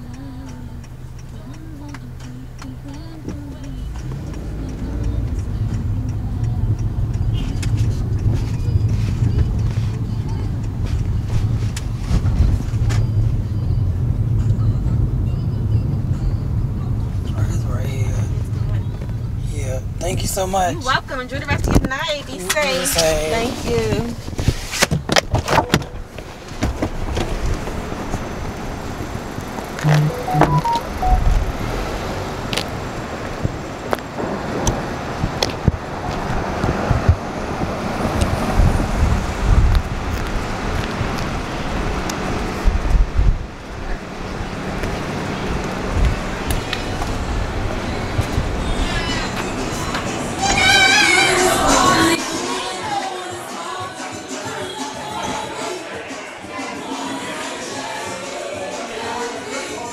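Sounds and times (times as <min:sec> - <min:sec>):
car cabin road and engine rumble: 0:00.0 - 0:53.0.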